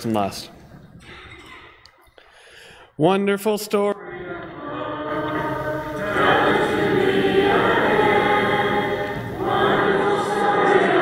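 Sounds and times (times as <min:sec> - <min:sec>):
soft breath-like hiss: 0:02.2 - 0:03.0
congregation singing a cappella: 0:03.8 - 0:11.0.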